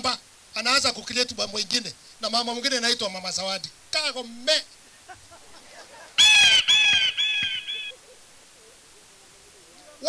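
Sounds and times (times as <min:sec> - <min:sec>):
bird squawking: 0:04.9 - 0:10.0.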